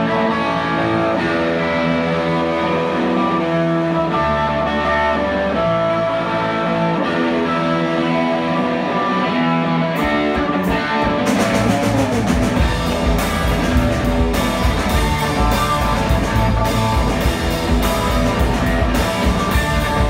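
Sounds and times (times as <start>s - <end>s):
bass guitar: 0.0s - 20.0s
drums: 0.0s - 20.0s
electric guitar: 0.0s - 20.0s.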